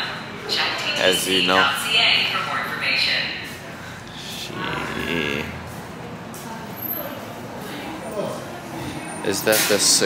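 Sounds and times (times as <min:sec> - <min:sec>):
wavering bleat-like vocal sound: 0:04.3 - 0:05.6.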